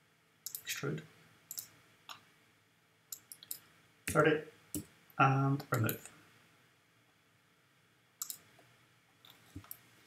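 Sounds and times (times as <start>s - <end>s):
computer mouse clicks: 0.4s - 0.7s, 1.5s - 2.2s, 3.1s - 4.2s, 8.2s - 8.6s, 9.2s - 9.8s.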